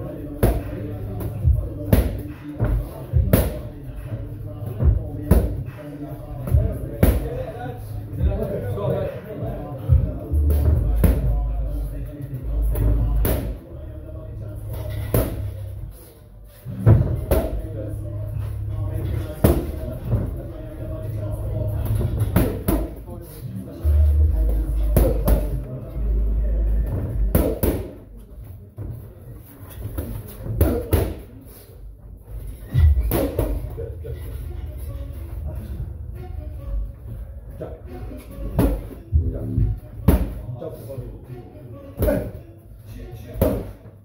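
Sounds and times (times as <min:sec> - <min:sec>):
boxing gloves hitting mitts: 0:00.4 - 0:03.6, 0:16.9 - 0:17.6, 0:19.4 - 0:20.3, 0:26.9 - 0:28.0, 0:29.8 - 0:31.3.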